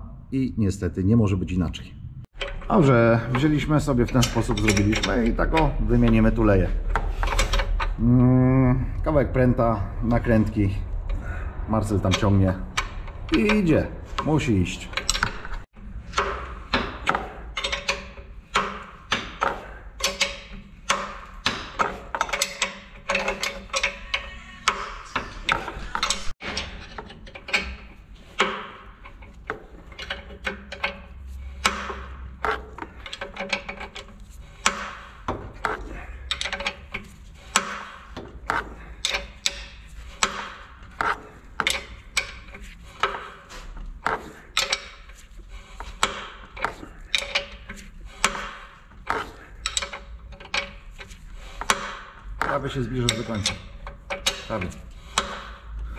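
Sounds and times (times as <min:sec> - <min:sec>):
spanner clicking on a nut: 0:02.3 - 0:08.0, 0:11.9 - 0:55.9.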